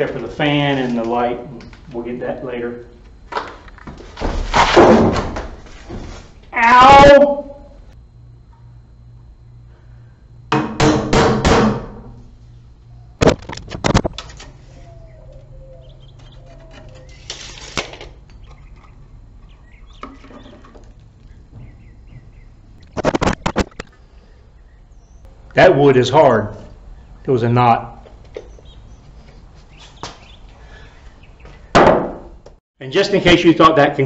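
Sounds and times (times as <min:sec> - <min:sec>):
faint bird chirps: 0:14.7 - 0:17.3
sharp knocks on wood: 0:31.7 - 0:32.3.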